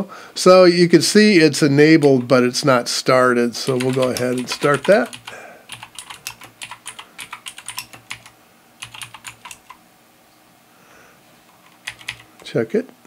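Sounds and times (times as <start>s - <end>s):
computer keyboard typing: 3.6s - 9.8s, 11.5s - 12.5s.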